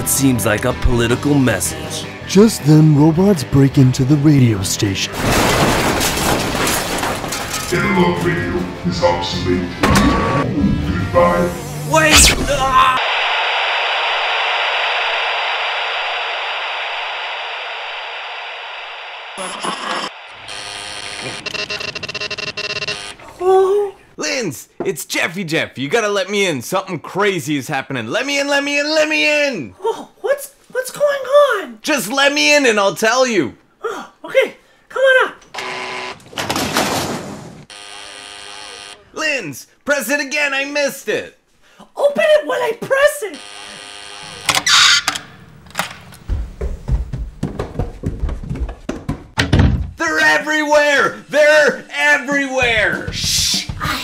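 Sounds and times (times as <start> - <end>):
steady high electronic tone: 11.1 - 23.2, 43.3 - 45.5
door intercom buzzer: 19.6 - 23.2, 35.5 - 36.2, 37.7 - 39.1, 43.3 - 46.0
irregular thumps and knocks: 46.0 - 50.0.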